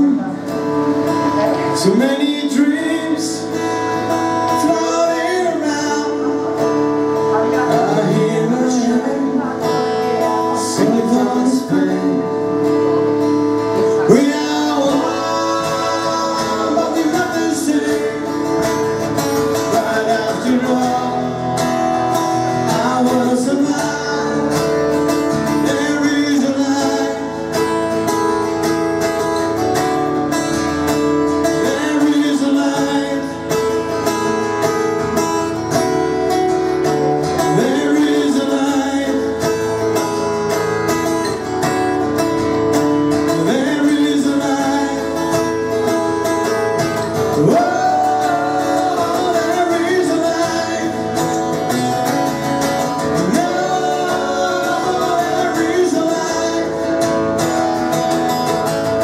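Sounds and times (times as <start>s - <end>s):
acoustic-electric guitar: 0.0s - 59.0s
resonator guitar: 0.0s - 59.0s.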